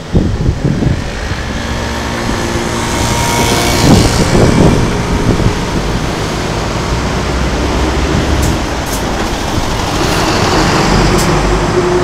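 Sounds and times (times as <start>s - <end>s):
bus passing: 0.0s - 12.0s
road traffic passing: 0.0s - 12.0s.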